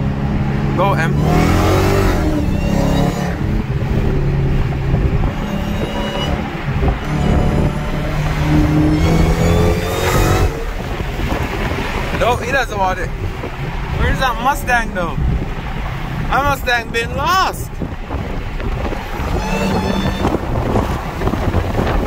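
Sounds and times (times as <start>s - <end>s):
supercharger whine: 0.0s - 12.3s, 17.7s - 22.0s
car engine accelerating hard: 0.0s - 17.1s, 17.7s - 22.0s.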